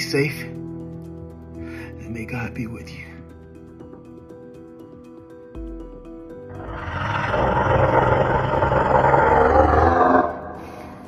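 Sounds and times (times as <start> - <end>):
film underscore music: 0.0 - 11.0
creature roar: 6.5 - 10.6.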